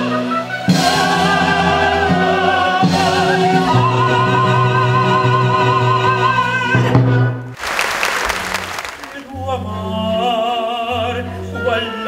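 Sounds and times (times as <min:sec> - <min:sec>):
audience applause: 0:07.6 - 0:09.4.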